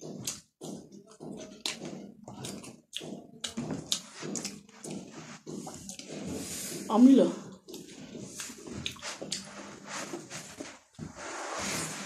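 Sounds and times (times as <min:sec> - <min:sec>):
chewing and lip-smacking: 0:00.0 - 0:06.4, 0:07.5 - 0:09.8.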